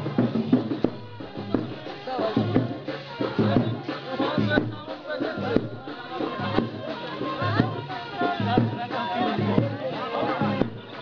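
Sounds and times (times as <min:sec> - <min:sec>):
percussion steady beat: 0:00.0 - 0:11.0
voice chanting over loudspeaker: 0:01.2 - 0:11.0.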